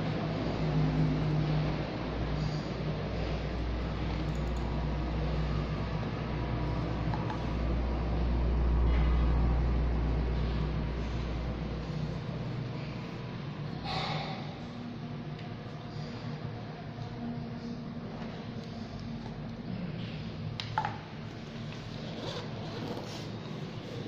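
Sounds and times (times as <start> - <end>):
low engine-like rumble: 0.0 - 24.0
steady hum: 0.0 - 24.0.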